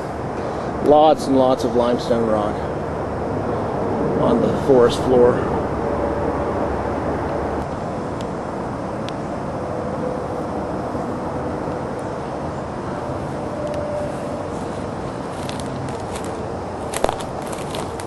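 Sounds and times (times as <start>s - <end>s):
distant road traffic: 0.0s - 18.0s
footsteps on rocks and leaves: 14.8s - 18.0s.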